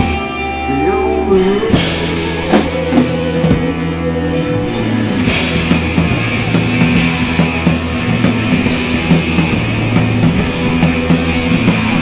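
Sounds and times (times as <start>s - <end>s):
live rock band playing: 0.0s - 12.0s
rising guitar phrase: 0.0s - 12.0s.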